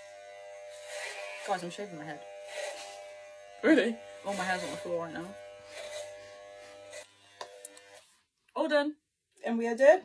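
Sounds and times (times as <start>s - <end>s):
electric hair clippers buzzing: 0.0s - 8.2s.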